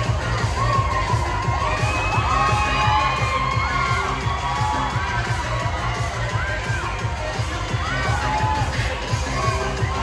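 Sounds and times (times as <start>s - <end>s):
children cheering and shouting: 0.0s - 10.0s
dance music with steady beat: 0.0s - 10.0s.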